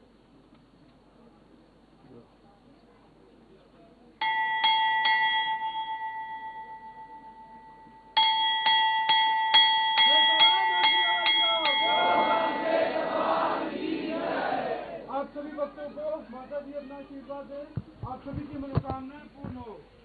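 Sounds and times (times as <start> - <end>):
temple bell ringing: 4.2 - 13.1
group of voices shouting: 11.7 - 15.1.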